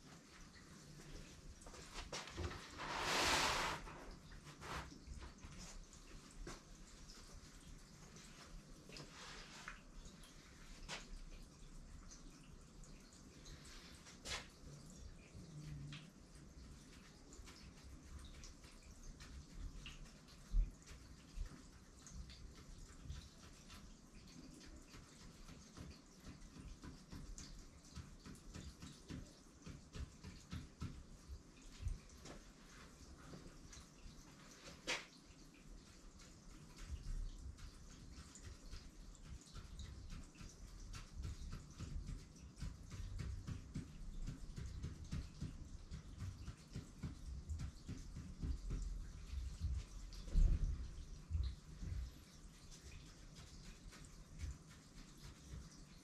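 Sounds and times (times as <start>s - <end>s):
pen tapping and scratching on paper: 24.6s - 31.4s, 36.6s - 52.1s.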